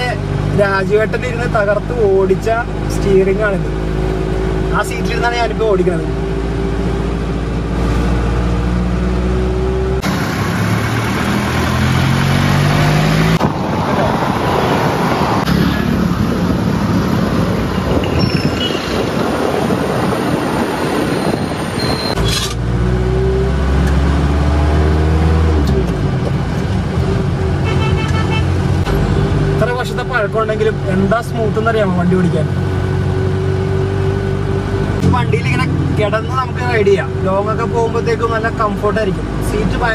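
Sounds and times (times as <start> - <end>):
diesel engine pulling: 0.0 - 39.9
road and wind noise: 0.0 - 39.9.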